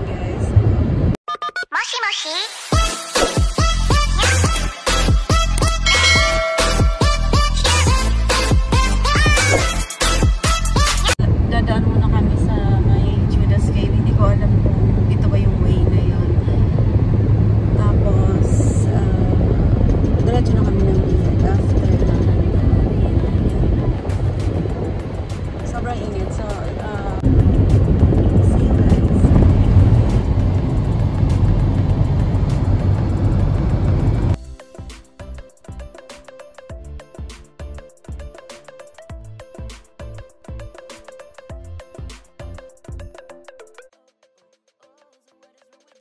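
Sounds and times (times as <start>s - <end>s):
music: 1.3s - 11.2s, 17.8s - 46.0s
road and engine noise in car: 11.1s - 34.4s.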